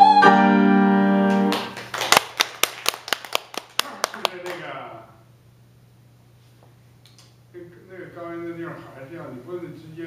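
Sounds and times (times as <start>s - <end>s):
person clapping: 1.3s - 4.7s.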